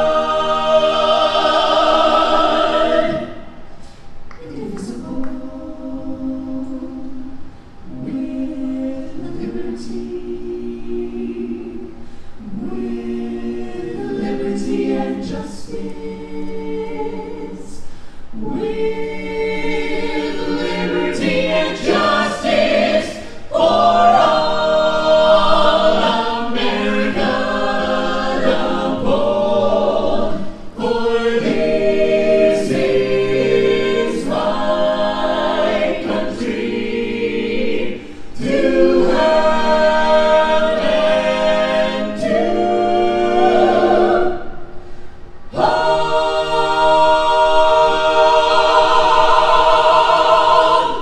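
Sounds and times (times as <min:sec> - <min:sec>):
a cappella ensemble singing: 0:00.0 - 0:51.0.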